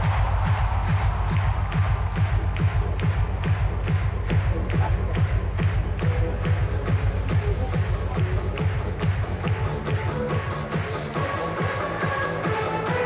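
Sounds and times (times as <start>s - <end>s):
electronic dance music: 0.0s - 13.0s.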